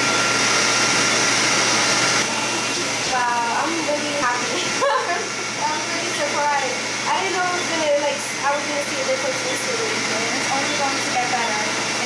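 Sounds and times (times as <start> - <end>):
cold air blower hissing: 0.0 - 12.0
woman talking: 2.2 - 12.0.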